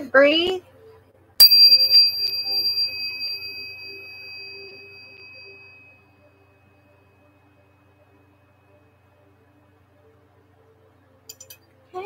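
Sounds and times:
metal chime ringing: 1.4s - 9.0s.

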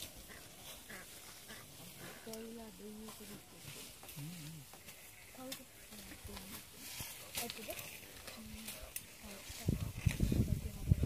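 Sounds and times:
crackling low rumble: 0.0s - 11.0s
low voices murmuring: 0.1s - 11.0s.

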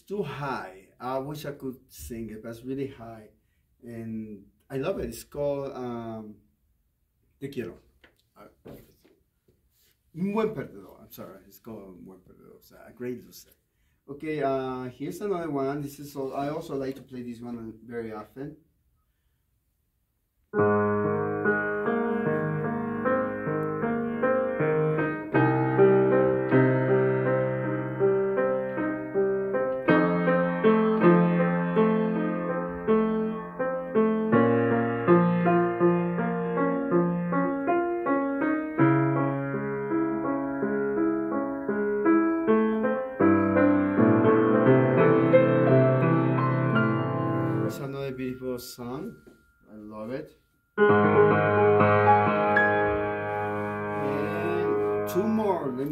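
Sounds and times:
piano playing: 20.5s - 55.9s.

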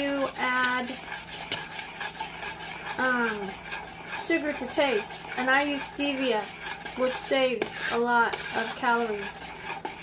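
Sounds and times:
spoon stirring in a saucepan: 0.0s - 10.0s.

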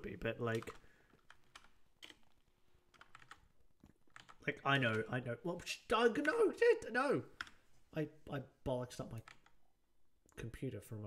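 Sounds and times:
computer keyboard keystrokes: 0.5s - 2.3s, 2.9s - 3.4s, 4.1s - 5.1s, 9.2s - 9.6s.

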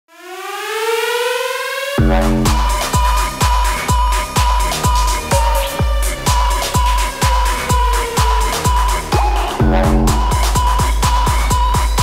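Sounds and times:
buzzy rising synth tone: 0.1s - 12.0s.

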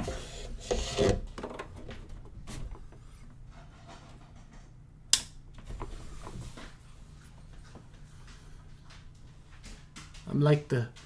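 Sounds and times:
sharp click: 5.1s - 5.4s.

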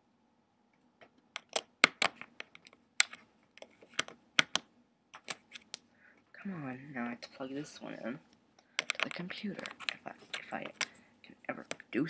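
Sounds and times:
small hard objects clicking: 1.4s - 4.6s, 8.7s - 11.0s.

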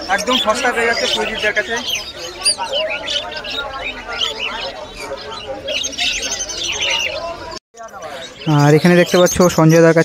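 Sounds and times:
faint bird chirping: 0.0s - 10.0s.

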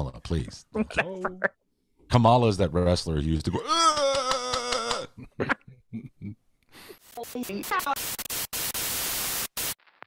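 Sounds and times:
harsh tv static: 7.0s - 10.0s.

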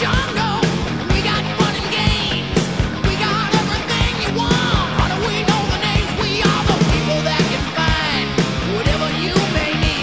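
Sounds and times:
rock music with guitar: 0.0s - 10.0s
steady drum beat: 0.0s - 10.0s.

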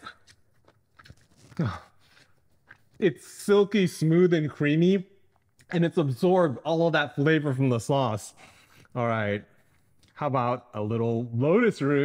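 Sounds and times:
man chewing food: 0.0s - 3.3s, 5.1s - 5.8s, 8.4s - 10.2s
mouth clicks: 5.2s - 5.8s.

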